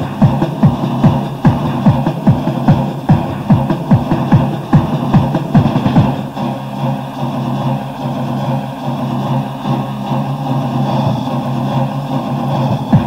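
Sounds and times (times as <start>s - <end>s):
low synth drone: 0.0s - 13.0s.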